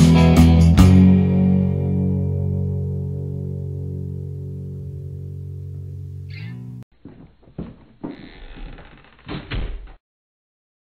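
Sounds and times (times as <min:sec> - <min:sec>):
muffled knocks and thumps: 0:07.0 - 0:08.2.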